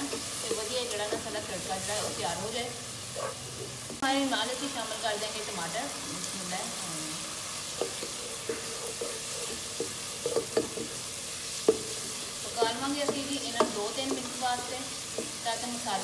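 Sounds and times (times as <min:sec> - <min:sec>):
wooden spatula scraping pot: 0:00.0 - 0:02.5, 0:07.7 - 0:15.4
steady sizzle: 0:00.0 - 0:16.0.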